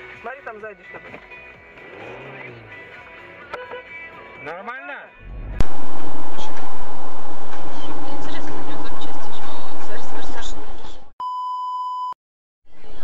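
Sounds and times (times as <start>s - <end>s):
harsh distorted noise: 5.2s - 11.1s.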